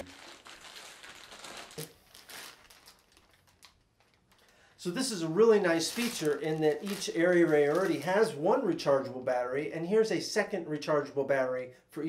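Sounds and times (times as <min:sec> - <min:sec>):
plastic bag crinkling: 0:00.0 - 0:08.9.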